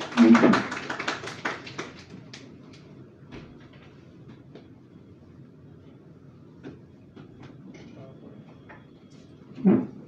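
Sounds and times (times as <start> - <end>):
audience clapping: 0.0 - 2.9.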